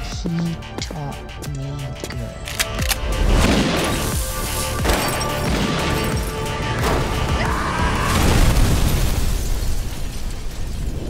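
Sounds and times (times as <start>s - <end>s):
car explosion: 8.0s - 11.0s.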